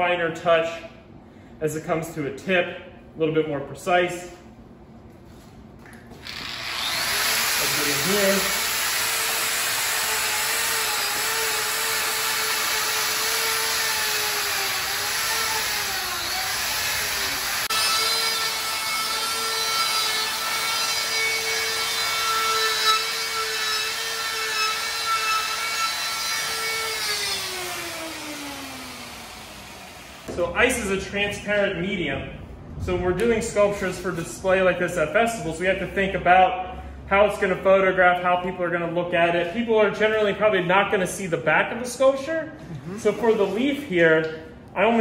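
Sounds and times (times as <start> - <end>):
die grinder whining: 6.2 - 30.4.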